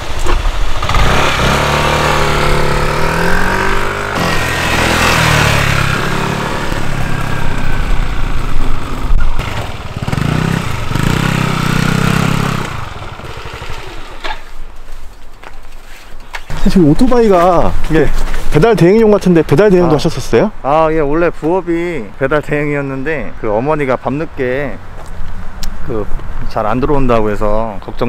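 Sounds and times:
motor scooter engine accelerating: 0.0 - 14.4.

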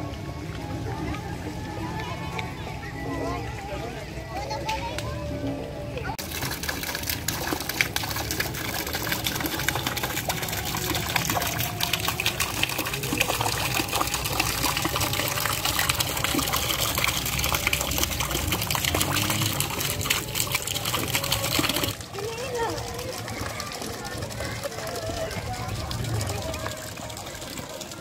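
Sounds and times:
fountain water splashing into pond: 6.2 - 28.0.

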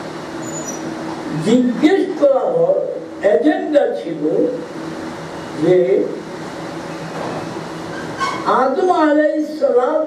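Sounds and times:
man speaking: 1.3 - 4.7, 5.6 - 6.2, 8.5 - 10.0.

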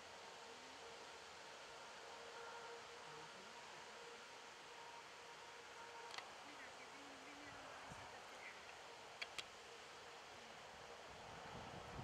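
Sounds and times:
faint outdoor hiss: 0.0 - 12.0.

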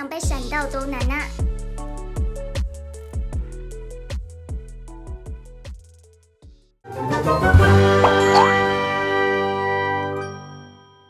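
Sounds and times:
chiming jingle chord: 8.0 - 8.8.

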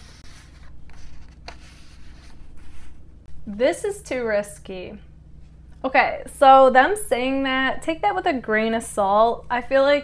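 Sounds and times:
paper cards rubbing and sliding: 0.0 - 3.0.

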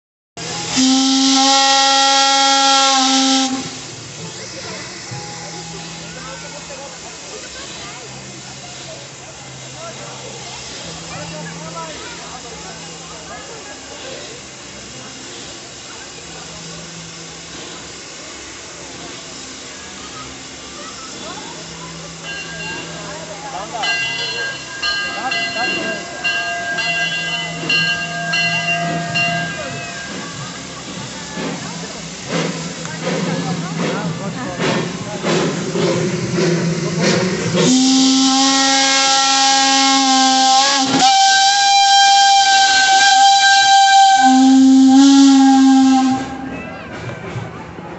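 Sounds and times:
steam locomotive whistle: 0.4 - 4.0, 5.0 - 7.3, 23.6 - 31.6, 32.4 - 46.7
murmur of voices: 0.4 - 47.9.

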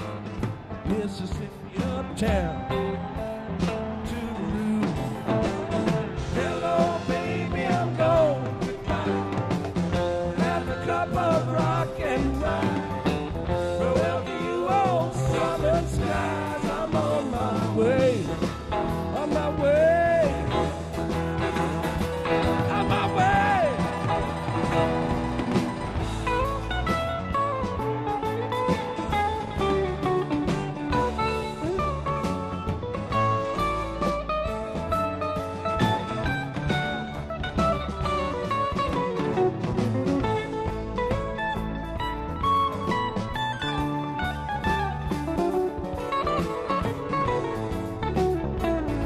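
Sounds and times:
bass guitar: 0.0 - 49.0
drums: 0.0 - 49.0
electric guitar solo: 20.1 - 49.0.

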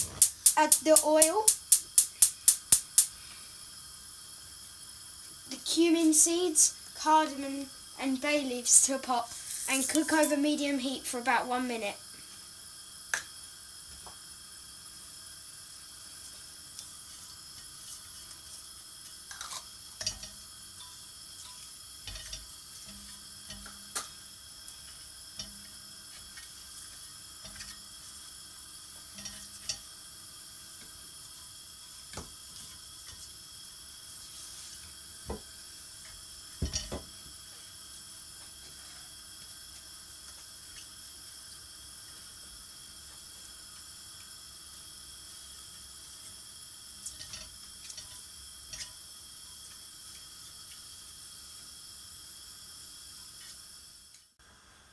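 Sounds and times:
spatula clicking and tapping: 0.0 - 3.1, 19.1 - 26.6, 27.4 - 27.9, 29.1 - 29.9, 47.0 - 49.0
spices sizzling in oil: 0.0 - 54.9.

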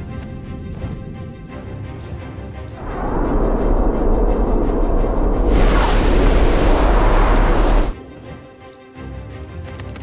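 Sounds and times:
missiles roaring in flight: 2.8 - 8.0.

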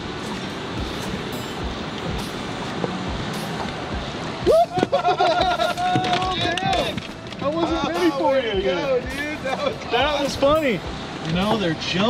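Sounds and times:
boat noise: 0.0 - 12.0
river water rushing: 0.0 - 12.0
loud long held cry: 4.4 - 6.8.

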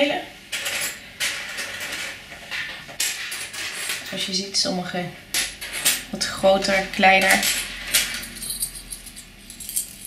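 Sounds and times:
porcelain rings clinking: 7.2 - 10.0.

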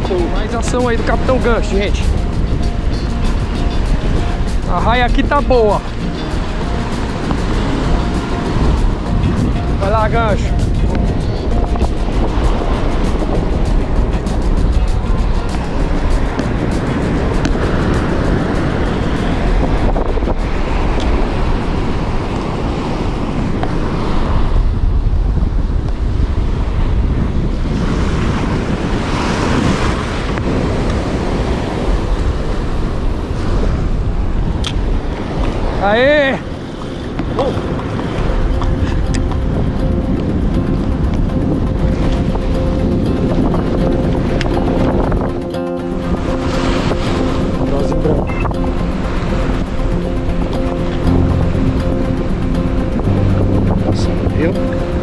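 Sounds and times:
surf washing onto beach: 0.0 - 55.0
wind buffeting microphone: 0.0 - 55.0.

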